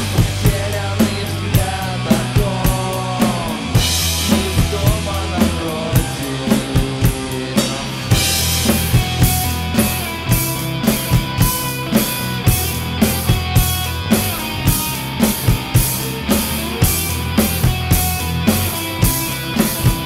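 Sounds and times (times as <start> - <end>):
rock band instrumental: 0.0 - 20.0
kick and snare drum beat: 8.1 - 20.0.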